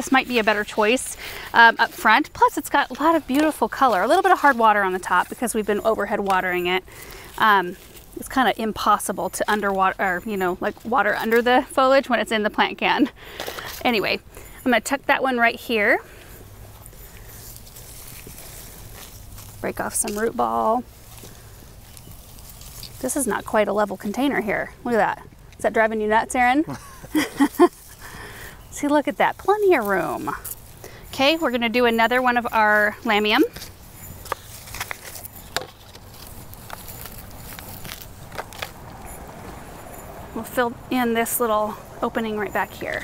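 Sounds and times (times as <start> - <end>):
hands pressing potting soil: 0.0 - 12.2, 27.0 - 43.0
plastic pot clicking and crackling: 33.5 - 39.0.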